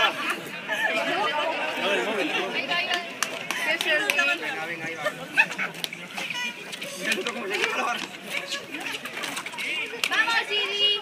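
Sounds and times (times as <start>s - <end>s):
voices talking over one another: 0.0s - 11.0s.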